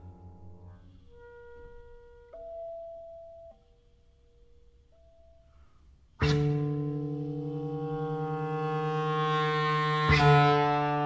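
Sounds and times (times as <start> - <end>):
clarinet soft sustained notes: 0.0 - 11.0.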